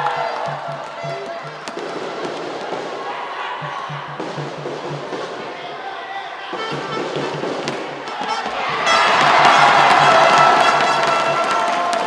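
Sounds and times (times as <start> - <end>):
music with fast low drumbeat: 0.0 - 3.0, 3.6 - 5.6, 6.6 - 11.6
crowd noise in a hall: 0.0 - 12.0.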